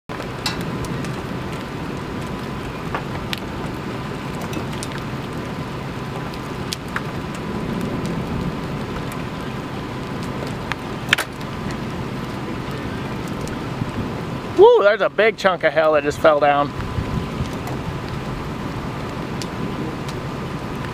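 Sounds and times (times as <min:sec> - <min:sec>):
hailstones striking: 0:00.1 - 0:20.9
rain: 0:00.1 - 0:20.9
wind: 0:00.1 - 0:20.9.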